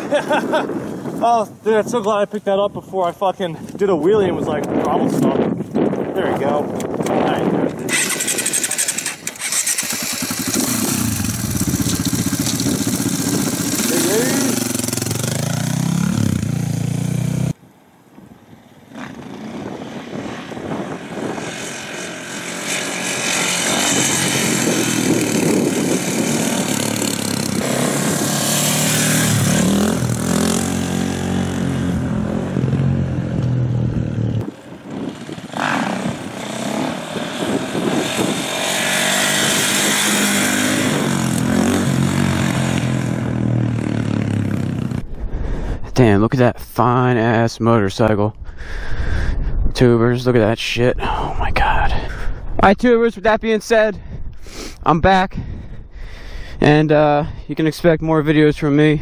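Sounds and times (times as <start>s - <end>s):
motorcycle engine revving: 7.8s - 17.6s, 18.8s - 45.1s.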